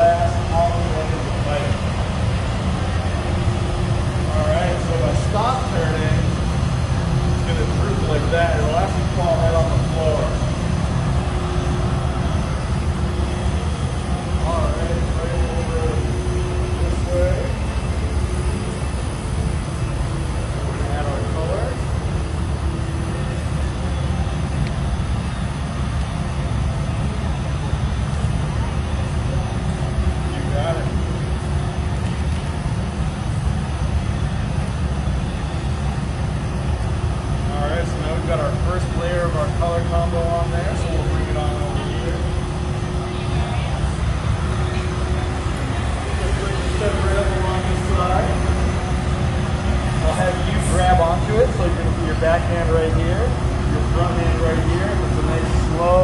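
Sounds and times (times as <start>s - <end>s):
faint voices: 0.0s - 56.0s
gas furnaces and fans roaring: 0.0s - 56.0s.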